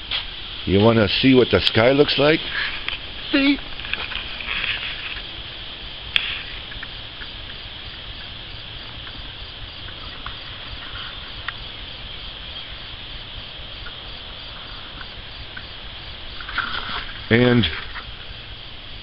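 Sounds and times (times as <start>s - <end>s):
insects chorus pulsing: 0.0s - 19.0s.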